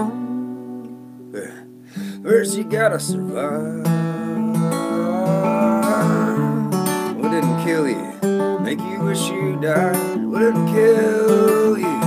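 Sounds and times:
acoustic guitar strumming: 0:00.0 - 0:12.0
man singing held note: 0:01.3 - 0:12.0.

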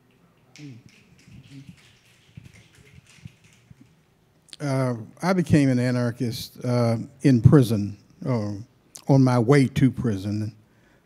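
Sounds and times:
audience finger snapping: 0:00.1 - 0:04.0.

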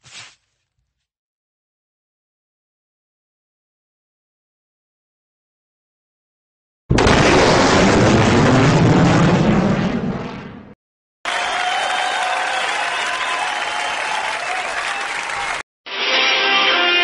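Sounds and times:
explosion-like blast: 0:06.9 - 0:10.8
applause: 0:11.2 - 0:15.6
crowd noise: 0:11.3 - 0:15.6.

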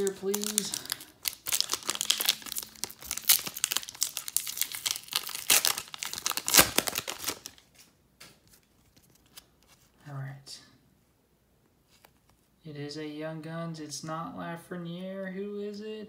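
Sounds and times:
foil wrapper crinkling and tearing: 0:00.0 - 0:07.9.

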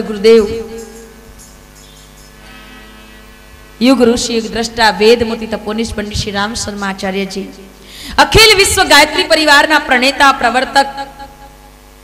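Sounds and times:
woman speaking: 0:00.0 - 0:01.0, 0:03.8 - 0:11.3
electrical mains hum: 0:00.0 - 0:12.0.

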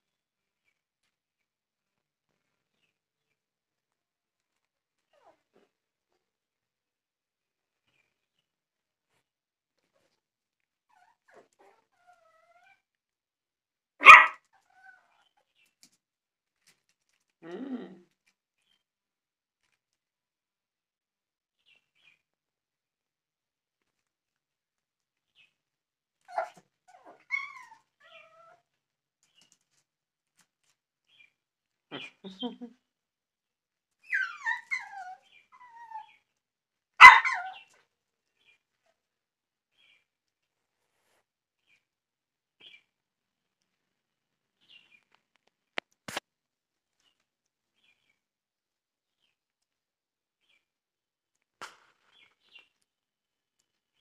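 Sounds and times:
puppy barking: 0:14.0 - 0:14.4, 0:37.0 - 0:37.6
puppy yipping: 0:14.0 - 0:15.1, 0:26.3 - 0:28.6, 0:34.0 - 0:36.2, 0:37.0 - 0:37.7
puppy whimpering: 0:26.3 - 0:28.6, 0:34.1 - 0:36.2.

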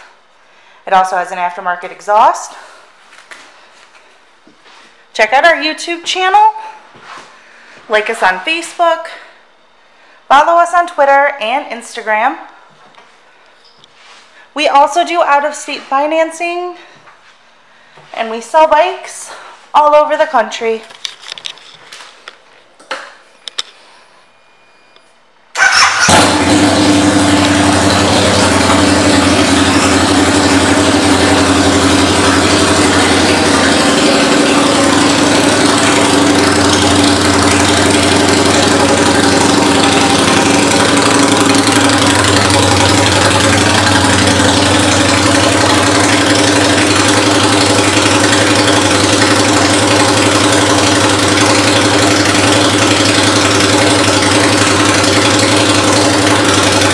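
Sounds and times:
motorcycle engine starting: 0:25.5 - 0:56.9
motorcycle engine idling loudly: 0:25.6 - 0:56.9.

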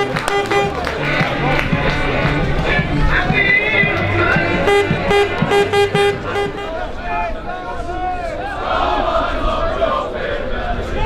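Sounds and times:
football crowd chanting: 0:00.0 - 0:11.0.

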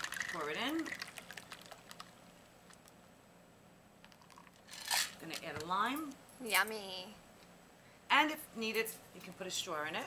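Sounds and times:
ice crunching in cocktail shaker: 0:00.0 - 0:02.1.

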